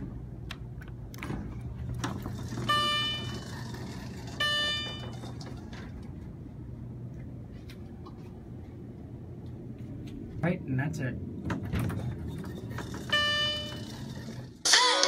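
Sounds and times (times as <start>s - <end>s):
steady low hum: 0.0s - 14.7s
elevator chime bell-like tones: 2.6s - 5.3s, 12.9s - 14.5s.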